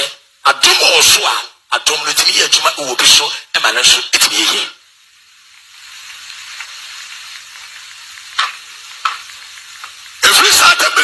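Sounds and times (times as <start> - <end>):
sharp single claps: 8.3 - 10.0.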